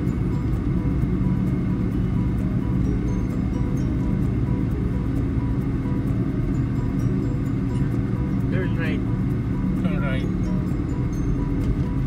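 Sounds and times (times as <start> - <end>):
car road and engine rumble: 0.0 - 12.0
music playing: 0.0 - 12.0.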